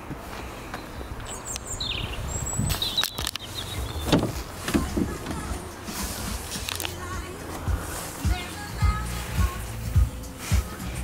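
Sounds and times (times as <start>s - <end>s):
car door clunk: 2.7s - 8.4s
car door handle clicks: 3.0s - 5.6s.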